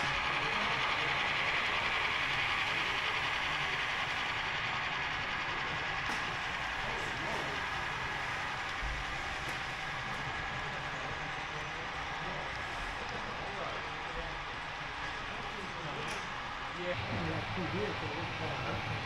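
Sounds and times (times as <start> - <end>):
model train rolling: 0.0 - 19.0.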